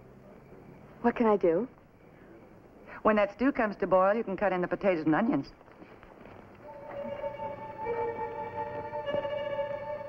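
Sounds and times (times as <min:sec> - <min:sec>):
dramatic music soft held notes: 0:06.6 - 0:10.0.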